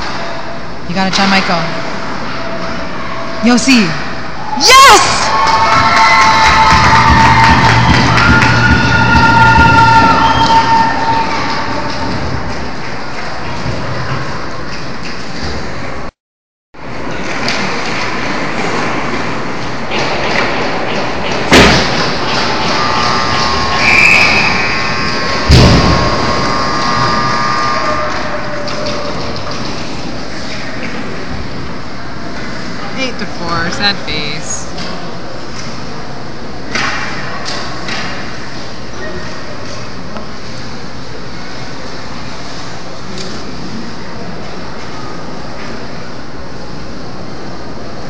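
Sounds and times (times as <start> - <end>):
ice rink noise: 0.0 - 16.1, 16.8 - 48.0.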